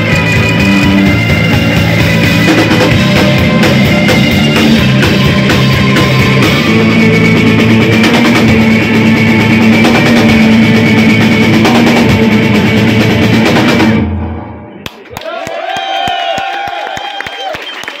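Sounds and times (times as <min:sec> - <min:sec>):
live rock band playing loudly: 0:00.0 - 0:14.4.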